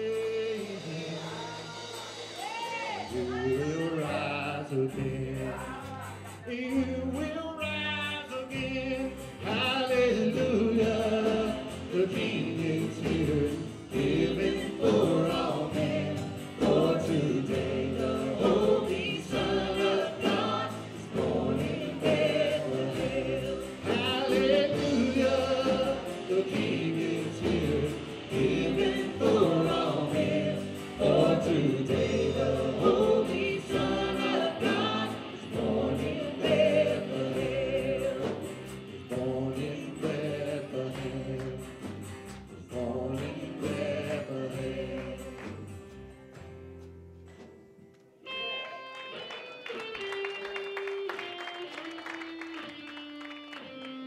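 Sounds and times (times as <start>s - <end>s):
man and women singing: 0.0s - 41.9s, 42.6s - 45.8s
bass: 0.0s - 47.5s
drums: 0.0s - 48.4s
acoustic guitar: 0.0s - 54.0s.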